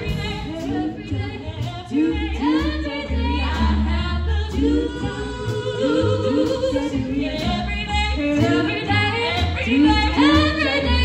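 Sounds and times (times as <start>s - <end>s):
jazz big band: 0.0s - 11.0s
low bass notes: 0.0s - 11.0s
women singing in harmony: 0.0s - 11.0s.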